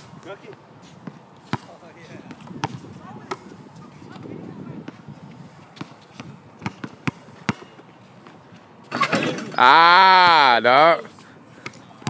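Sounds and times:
basketball bouncing on hard court: 1.0 - 3.5, 5.8 - 8.4.

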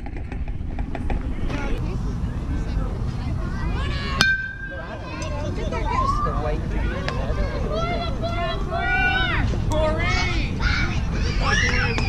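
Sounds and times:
voices from field and stands: 1.0 - 12.0
metal bat hitting ball: 4.2 - 5.2.

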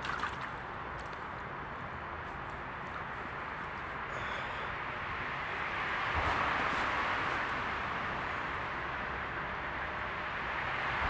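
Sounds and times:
motorway traffic hiss: 0.6 - 11.0.

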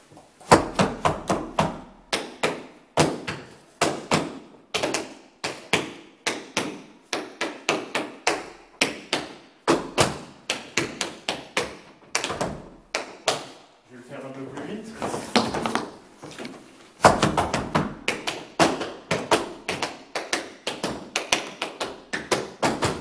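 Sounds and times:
dance shoes tapping wooden floor: 14.5 - 23.0.

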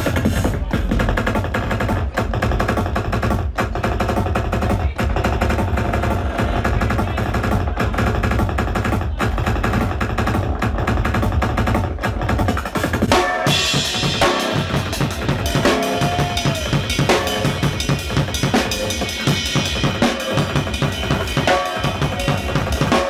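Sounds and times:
fast drum kit playing: 0.0 - 23.0.

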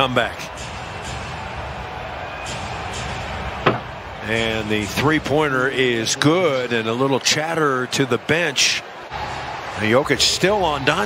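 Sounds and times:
arena music: 0.0 - 11.0
crowd noise: 0.0 - 11.0.

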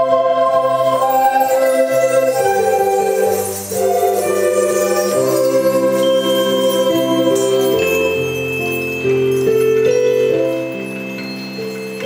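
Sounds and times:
recorder ensemble playing slow music: 0.0 - 12.0.

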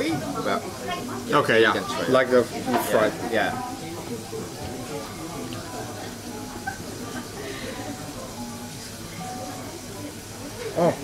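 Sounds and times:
faint music: 0.0 - 11.0
murmur of voices: 0.0 - 11.0.

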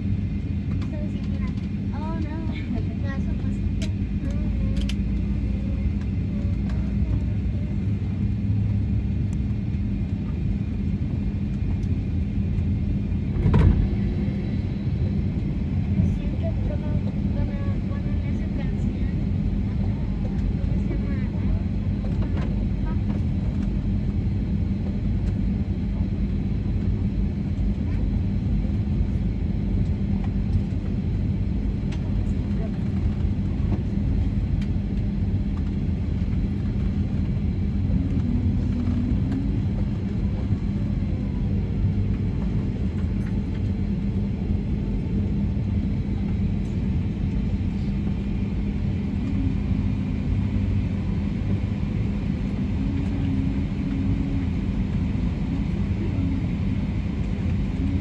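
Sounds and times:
aircraft engines rumbling: 0.0 - 58.0
constant hum: 0.0 - 58.0.

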